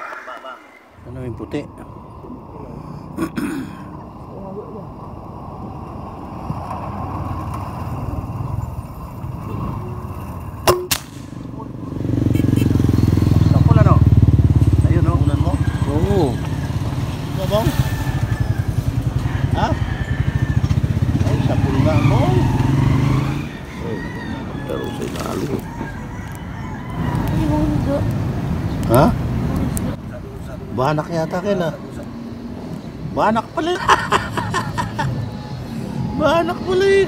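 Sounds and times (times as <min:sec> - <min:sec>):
motorcycle engine rumbling: 0:00.8 - 0:37.0
rifle shot: 0:10.7 - 0:11.5.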